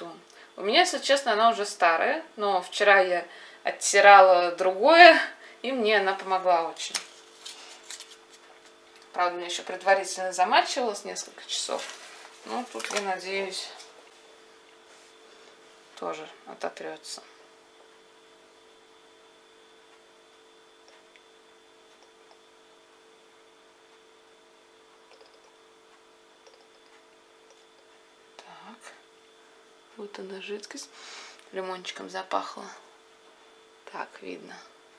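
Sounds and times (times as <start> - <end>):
faint steady hum: 0.0 - 34.9
soft handling clicks and rustles: 7.0 - 9.2.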